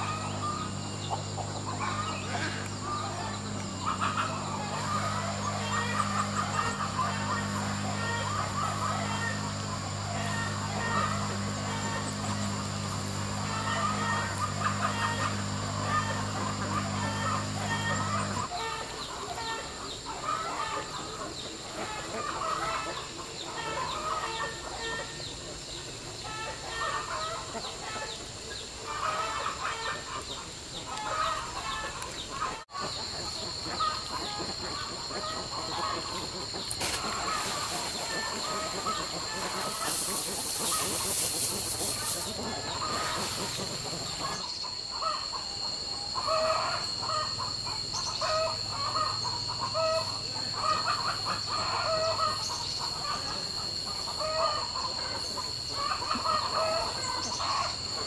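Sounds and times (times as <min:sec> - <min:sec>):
high insect drone: 0:00.0 - 0:58.0
poultry clucking: 0:00.0 - 0:58.0.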